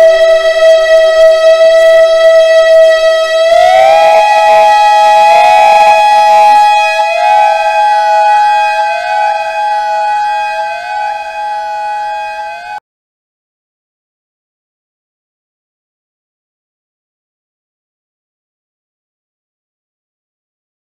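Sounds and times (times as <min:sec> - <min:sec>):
mixer feedback tone: 0:00.0 - 0:12.8.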